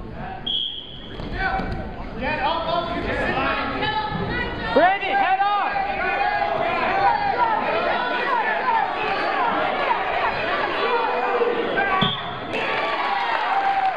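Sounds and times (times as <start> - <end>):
spectators shouting: 4.7 - 13.9.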